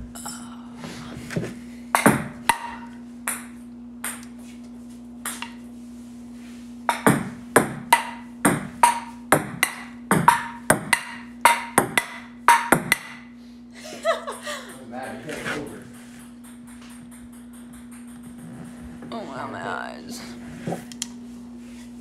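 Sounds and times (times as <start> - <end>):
table tennis ball hits and bounces: 1.9 - 4.3, 5.2 - 5.6, 6.9 - 13.3, 15.0 - 19.4.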